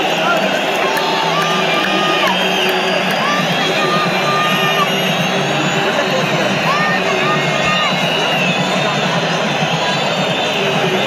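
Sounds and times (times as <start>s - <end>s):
stadium crowd chanting and cheering: 0.0s - 11.0s.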